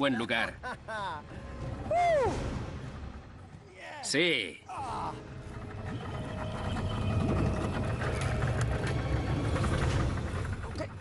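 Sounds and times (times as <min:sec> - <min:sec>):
boat motor rumbling: 0:04.7 - 0:11.0.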